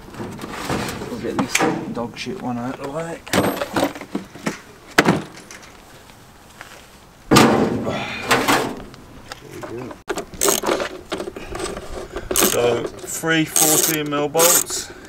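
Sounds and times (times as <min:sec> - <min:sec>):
metal hand tools clattering: 0:10.4 - 0:10.9, 0:12.4 - 0:12.8, 0:13.5 - 0:14.8.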